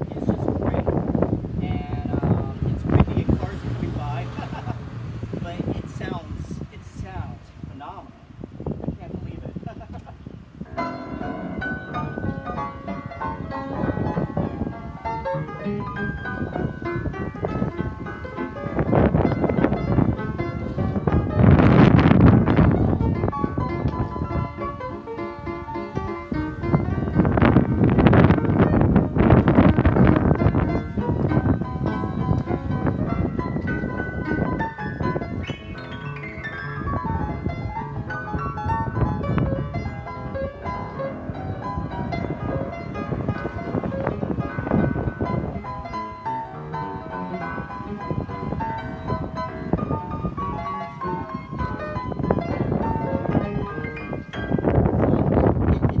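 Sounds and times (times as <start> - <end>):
upright piano chords and runs: 0.0 - 56.0.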